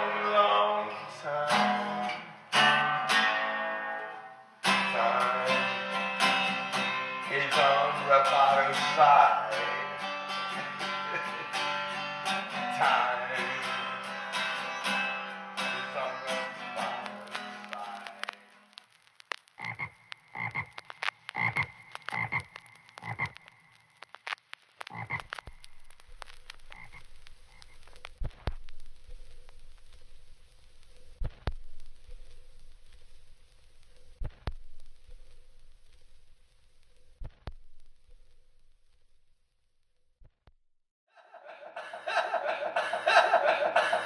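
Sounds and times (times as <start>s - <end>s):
strummed acoustic guitar: 0.0s - 18.4s
frog croaks: 19.5s - 24.0s, 24.8s - 25.7s, 26.7s - 28.2s.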